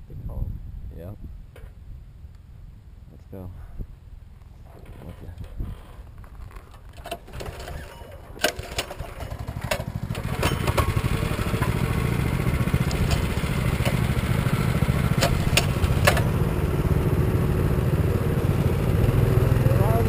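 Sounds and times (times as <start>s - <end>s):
bike rattles and knocks: 4.6s - 16.4s
dirt bike engine running: 7.2s - 20.0s.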